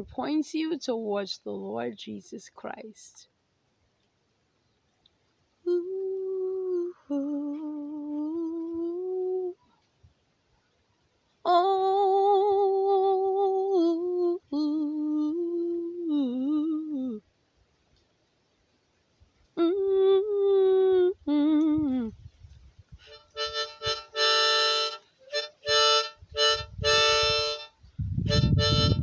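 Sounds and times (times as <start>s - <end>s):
woman humming: 5.6s - 9.8s, 11.5s - 17.3s, 19.6s - 22.2s.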